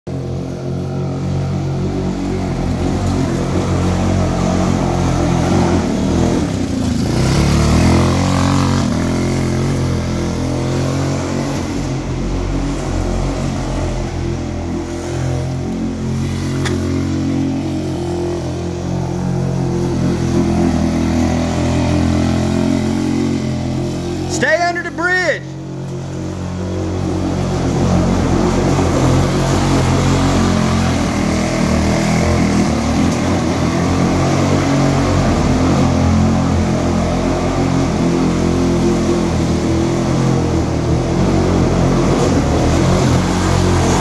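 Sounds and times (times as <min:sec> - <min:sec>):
go-kart engine revving: 0:00.1 - 0:44.0.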